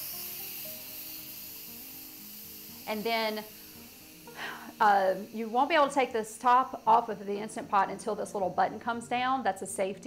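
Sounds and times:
pressure cooker venting steam: 0.0 - 10.0
soft background music: 0.0 - 10.0.

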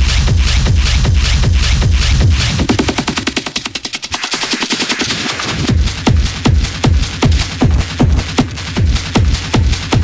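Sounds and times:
heavy kick drum: 0.0 - 3.4, 5.6 - 10.0
hard techno music: 0.0 - 10.0.

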